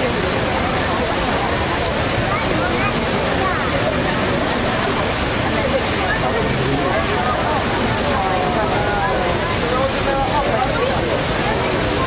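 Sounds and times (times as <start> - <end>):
crowd talking: 0.0 - 12.0
fountain spray rushing: 0.0 - 12.0.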